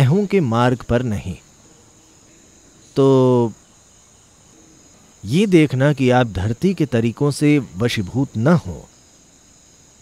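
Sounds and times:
man speaking: 0.0 - 1.4, 3.0 - 3.6, 5.2 - 8.9
crickets chirping: 0.0 - 10.0.

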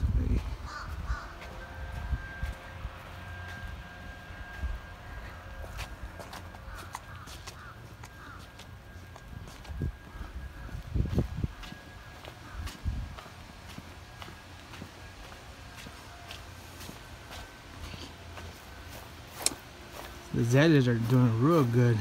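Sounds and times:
low rumble of wind: 0.0 - 22.0
bird cawing: 0.6 - 1.7, 5.0 - 9.2, 9.9 - 10.9, 11.9 - 13.4.

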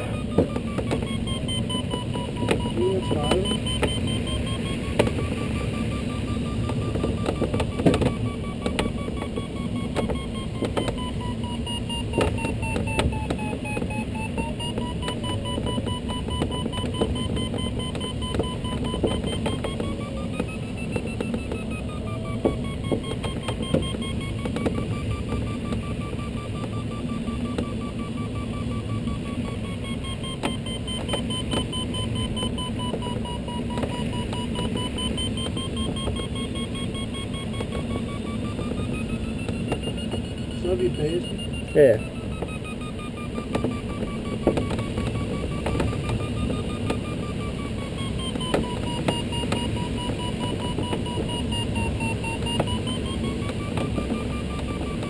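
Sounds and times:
air rushing around cockpit: 0.0 - 55.0
variometer beeping: 0.0 - 55.0.

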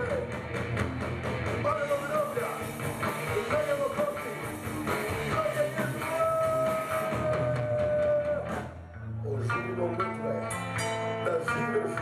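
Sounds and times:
punk rock band playing live: 0.0 - 12.0.

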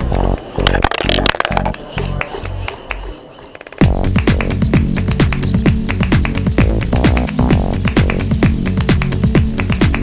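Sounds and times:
electronic music with steady beat: 0.0 - 10.0.

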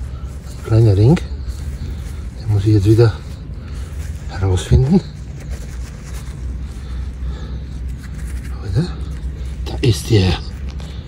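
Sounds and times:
hand rummaging in loose soil: 0.0 - 11.0.

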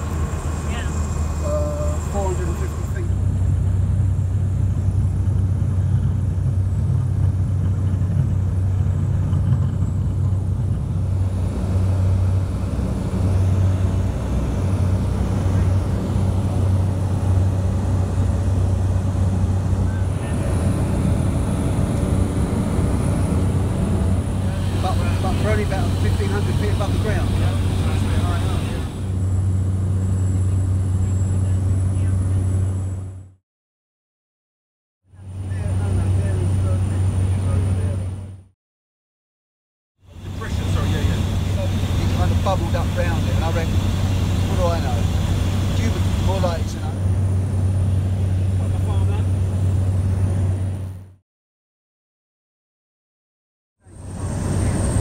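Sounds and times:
propeller aircraft engine droning: 0.0 - 33.4, 35.1 - 38.5, 40.0 - 51.2, 53.8 - 55.0.

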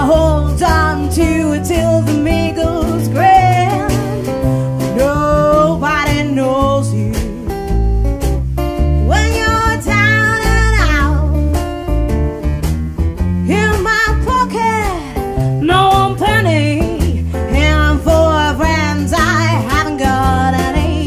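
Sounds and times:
woman singing: 0.0 - 7.6, 9.0 - 11.4, 13.4 - 21.0
light drum beat: 0.0 - 21.0
plucked double bass: 0.0 - 21.0
strummed acoustic guitar: 0.0 - 21.0.

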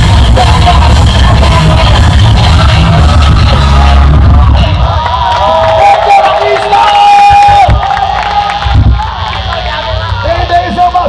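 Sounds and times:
live rock band playing: 0.0 - 5.0
crowd cheering and whooping: 2.3 - 10.5.

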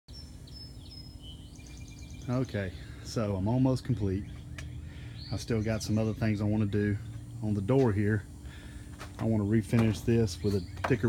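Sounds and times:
birds chirping and whistling: 0.1 - 11.0
low outdoor hum: 0.1 - 11.0.

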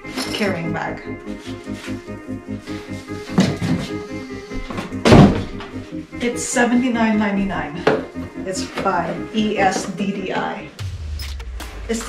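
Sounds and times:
background music with steady beat: 0.0 - 12.0
loud thunk of bag handled: 5.0 - 5.6.

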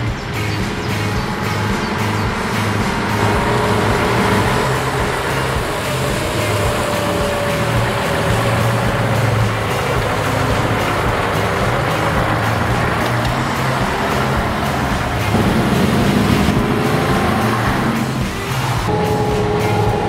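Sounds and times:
diesel truck driving slowly past: 0.0 - 20.0.

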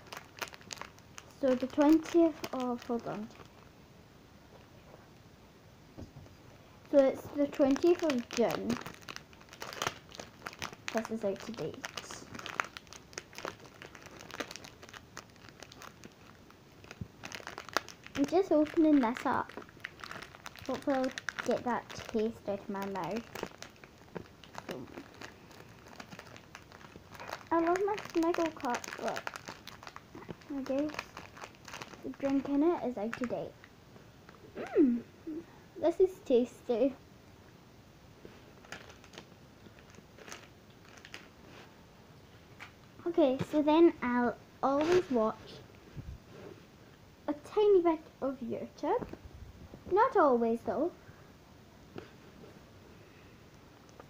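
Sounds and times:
plastic wrapper crinkling: 0.0 - 3.7, 6.8 - 33.7, 38.3 - 41.7, 53.5 - 54.0.

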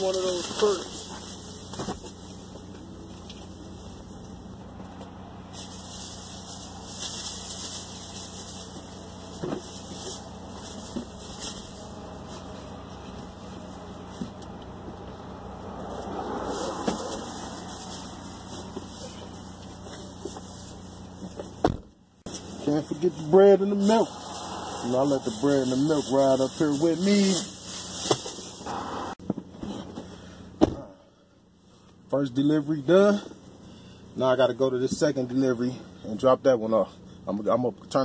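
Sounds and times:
plastic bags rustling: 0.0 - 2.7, 5.4 - 14.1, 16.3 - 21.2, 22.3 - 28.6
car engine idling: 0.0 - 38.0.

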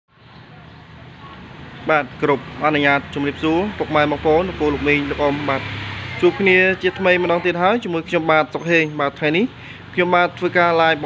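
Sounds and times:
person speaking: 1.8 - 11.0.

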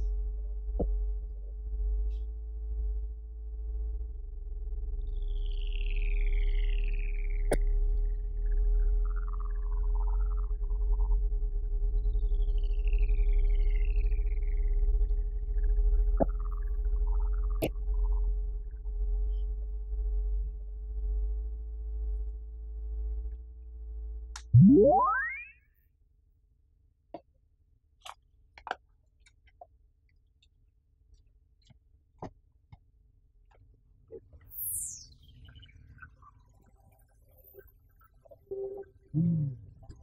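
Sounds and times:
low synth drone: 0.0 - 25.5
synthesized drone: 24.6 - 25.5.

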